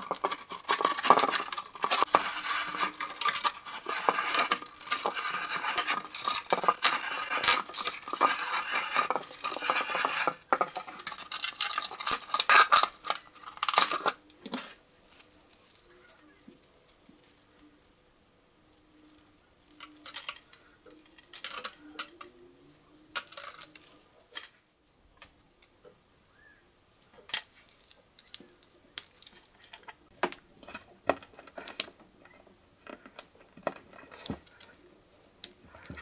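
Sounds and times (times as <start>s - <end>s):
plastic crackling and scraping: 0.0s - 17.7s, 29.1s - 36.0s.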